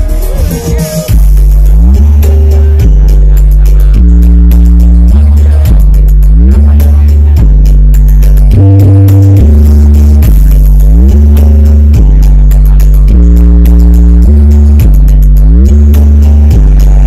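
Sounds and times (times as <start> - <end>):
dance music with heavy bass: 0.0 - 17.0.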